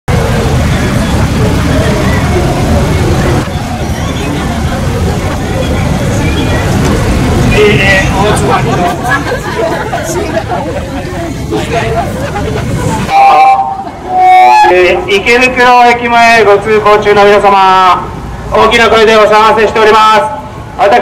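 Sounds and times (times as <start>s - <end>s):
indistinct voices: 0.1s - 15.9s
road traffic rumble: 0.1s - 21.0s.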